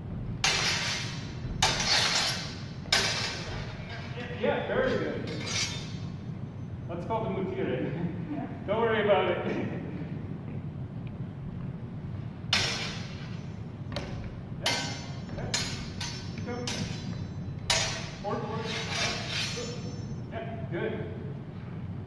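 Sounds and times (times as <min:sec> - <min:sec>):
steel swords clashing: 0:00.4 - 0:06.3, 0:12.5 - 0:20.2.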